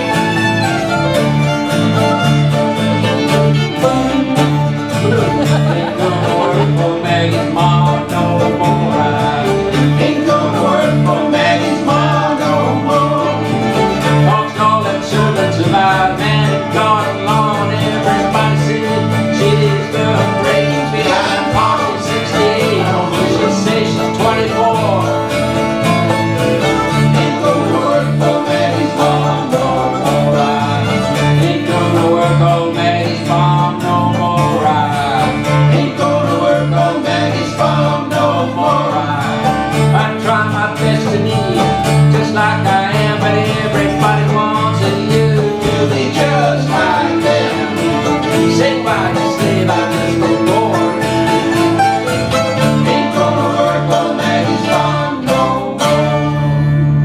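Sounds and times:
acoustic guitars: 0.0s - 57.0s
fiddle: 0.0s - 57.0s
plucked strings: 0.0s - 57.0s
upright bass: 0.0s - 57.0s.

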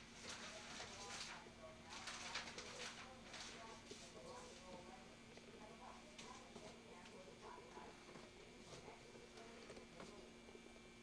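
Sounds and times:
newspaper pages rustling: 0.1s - 4.7s.

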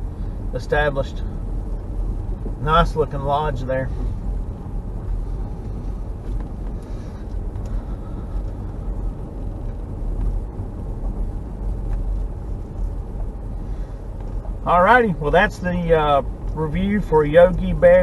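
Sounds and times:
car driving on gravel: 0.0s - 18.0s.

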